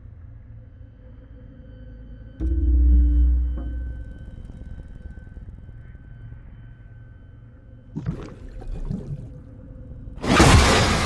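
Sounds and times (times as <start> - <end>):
suspense drone with low rumble: 0.0 - 11.0.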